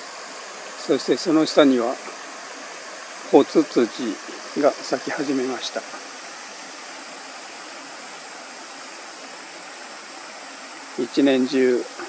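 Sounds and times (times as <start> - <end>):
small stream rushing: 0.0 - 12.0.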